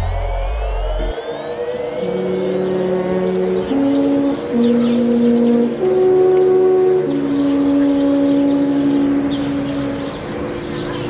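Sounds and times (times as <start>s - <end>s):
alphorn playing long notes: 0.0s - 11.0s.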